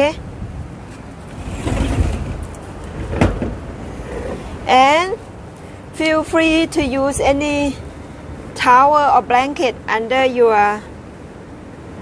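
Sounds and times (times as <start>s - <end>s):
chair scraping on wooden decking: 0.9s - 4.6s.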